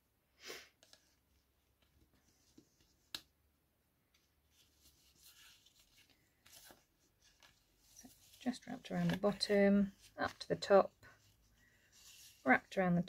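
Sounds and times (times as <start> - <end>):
rustling of string and paper: 4.1 - 13.0.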